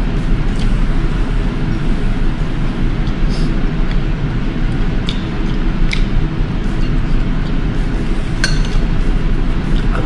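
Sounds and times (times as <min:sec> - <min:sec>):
low rumble with hiss: 0:00.0 - 0:10.0.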